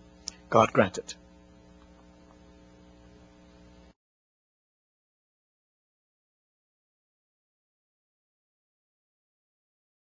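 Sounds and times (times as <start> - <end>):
electrical mains hum: 0.0 - 4.0.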